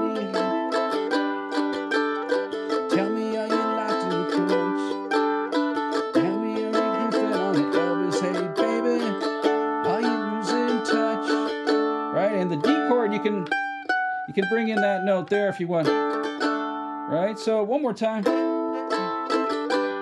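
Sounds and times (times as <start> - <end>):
person singing: 0.0 - 13.6, 14.3 - 16.0, 17.1 - 20.0
mandolin picking: 0.0 - 20.0.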